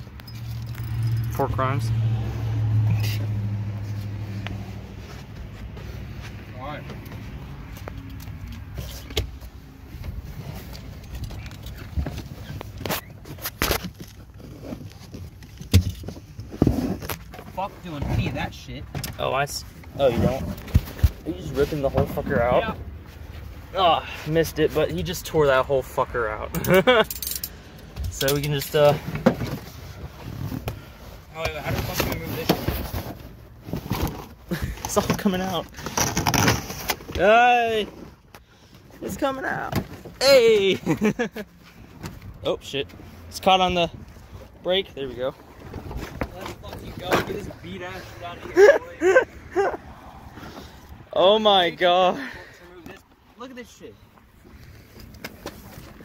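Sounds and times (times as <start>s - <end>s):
carpet rustling and scraping: 3.0s - 25.0s, 28.2s - 51.0s, 52.9s - 56.0s.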